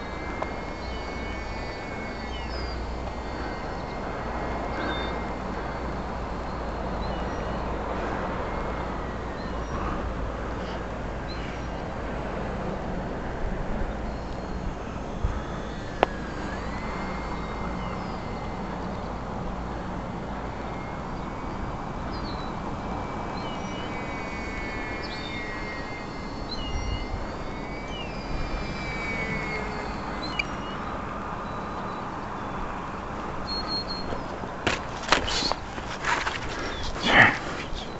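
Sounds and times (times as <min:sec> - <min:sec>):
electric model plane motor whine: 0:00.0 - 0:37.9.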